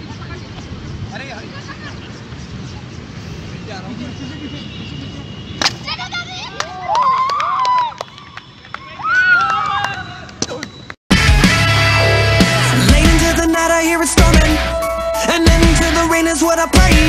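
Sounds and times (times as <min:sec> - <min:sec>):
music: 0:11.1 - 0:17.0.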